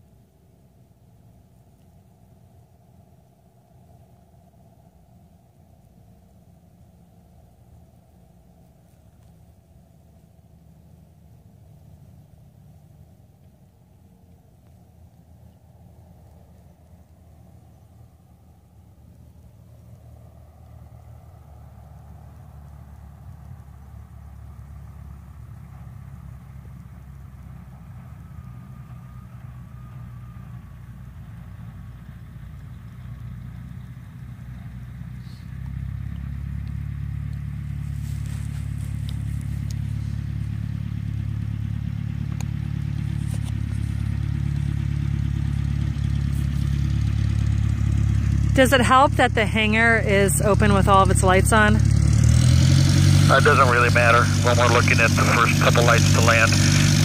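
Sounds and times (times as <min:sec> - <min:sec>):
small plane engine running: 0:00.0 - 0:57.0.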